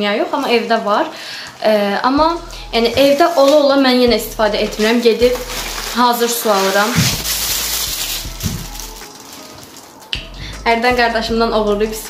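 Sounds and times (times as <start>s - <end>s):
plastic wrapping crinkling: 3.0s - 10.2s.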